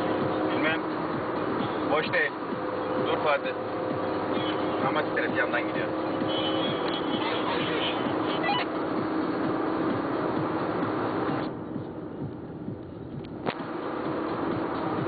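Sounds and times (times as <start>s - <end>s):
car road and engine noise: 0.0s - 15.0s.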